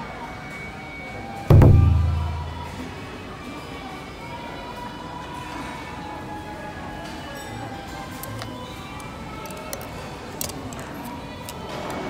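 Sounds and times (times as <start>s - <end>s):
deep ringing boom: 1.5s - 2.9s.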